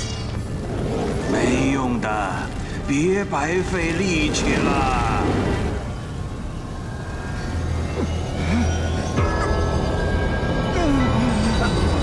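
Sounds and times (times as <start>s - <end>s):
faint musical drone: 0.0s - 12.0s.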